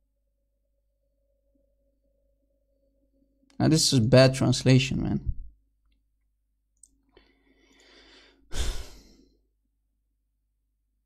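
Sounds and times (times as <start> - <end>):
man breathing close to microphone: 7.1 - 9.5.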